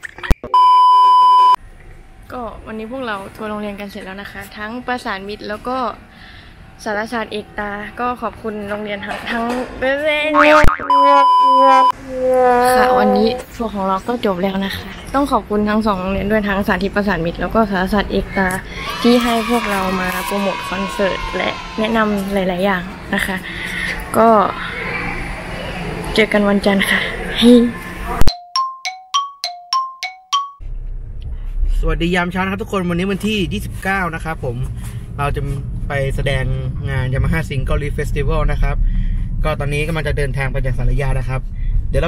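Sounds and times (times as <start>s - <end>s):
steady electronic tone: 10.3s - 13.5s
cartoon rising glide and click: 10.4s - 13.4s
two-note bell dings: 28.3s - 30.6s.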